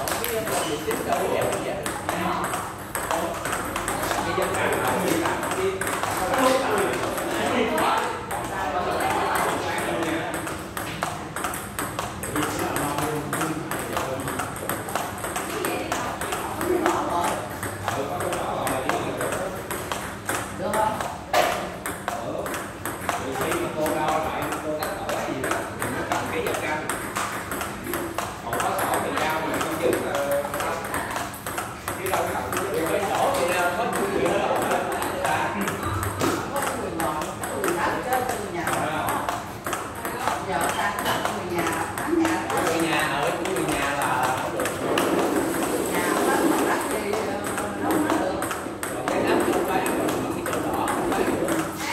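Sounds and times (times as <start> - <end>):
people talking: 0.0 - 11.4, 12.0 - 20.0, 20.6 - 27.0, 27.9 - 51.9
table tennis ball clicks: 0.0 - 51.9.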